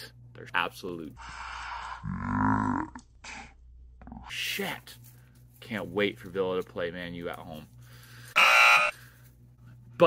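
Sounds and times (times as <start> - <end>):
electronic buzzer: 8.3 - 9.0.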